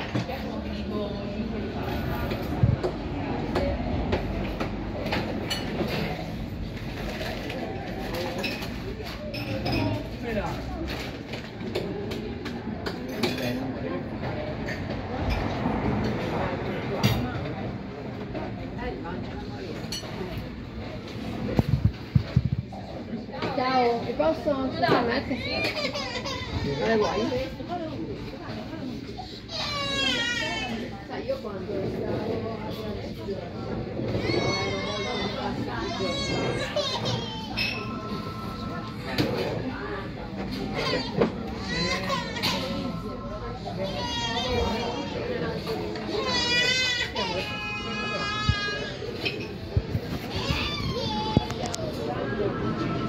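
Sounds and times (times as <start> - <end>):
people talking: 0.0 - 53.0.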